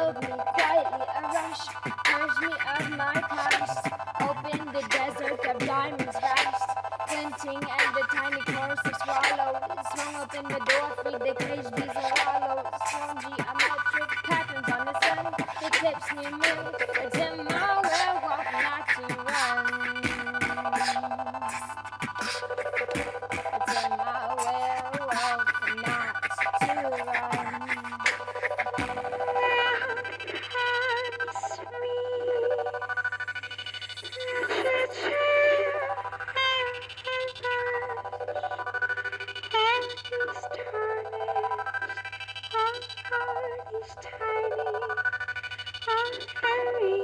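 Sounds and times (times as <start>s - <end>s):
high voice singing wordless notes: 0.0s - 33.1s, 34.0s - 45.2s, 45.8s - 47.0s.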